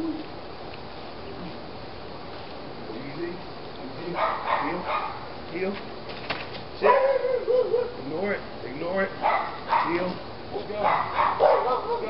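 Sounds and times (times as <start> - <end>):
dog whining: 6.9 - 8.0.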